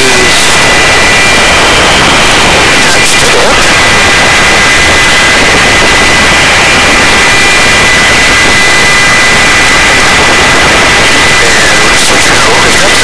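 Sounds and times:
helicopter engine and rotor noise: 0:00.0 - 0:13.0
steady high whine: 0:00.0 - 0:13.0.

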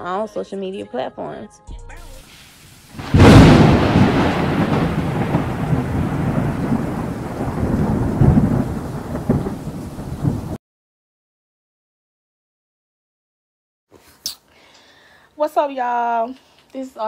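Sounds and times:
steady rain: 0:02.1 - 0:10.6
thunder: 0:02.9 - 0:10.6.

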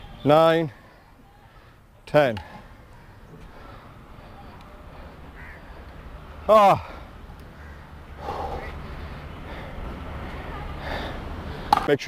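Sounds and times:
man breathing hard: 0:08.1 - 0:10.0, 0:10.7 - 0:11.7.

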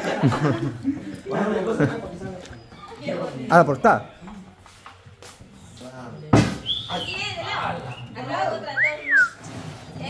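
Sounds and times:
faint background chatter: 0:00.0 - 0:10.0
person whistling: 0:06.6 - 0:07.2, 0:08.8 - 0:09.4.

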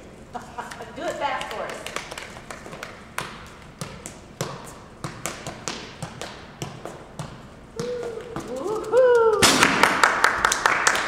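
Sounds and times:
audience clapping: 0:01.4 - 0:03.0, 0:09.3 - 0:11.0
person calling out: 0:07.8 - 0:09.4.

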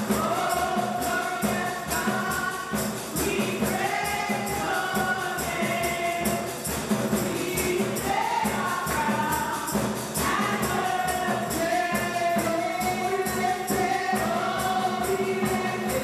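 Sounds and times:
percussion beat: 0:00.0 - 0:16.0
voices singing together: 0:00.0 - 0:16.0.

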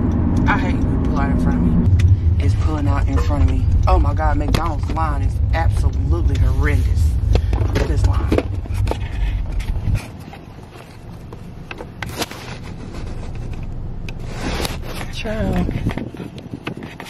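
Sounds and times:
car interior rumble: 0:00.0 - 0:17.0.

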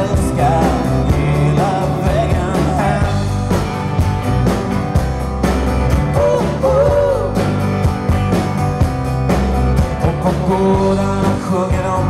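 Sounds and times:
melodic vocal line: 0:00.0 - 0:04.0, 0:06.0 - 0:07.9, 0:09.9 - 0:12.0
live rock band playing: 0:00.0 - 0:12.0.

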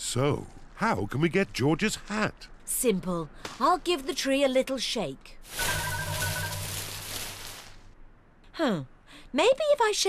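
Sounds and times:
leaves and branches rustling: 0:05.4 - 0:08.0.

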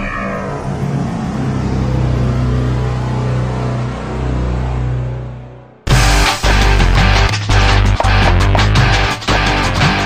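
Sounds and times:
higher tones: 0:00.0 - 0:04.0
low rumbling drone: 0:00.0 - 0:06.1.

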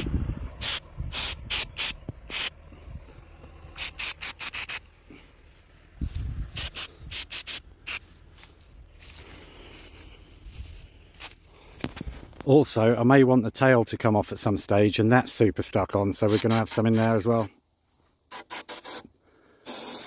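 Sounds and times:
aerosol spray hissing: 0:00.6 - 0:02.5, 0:03.8 - 0:04.8, 0:06.6 - 0:08.0, 0:19.7 - 0:20.0.

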